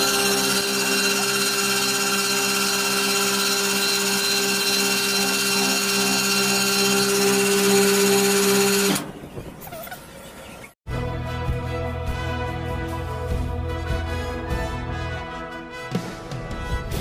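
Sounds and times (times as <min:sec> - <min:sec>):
electric winch motor humming: 0:00.0 - 0:09.1.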